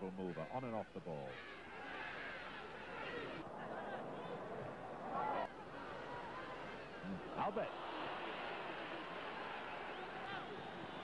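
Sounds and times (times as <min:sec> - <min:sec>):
stadium crowd noise: 0:00.0 - 0:11.0
crowd shout: 0:01.3 - 0:11.0.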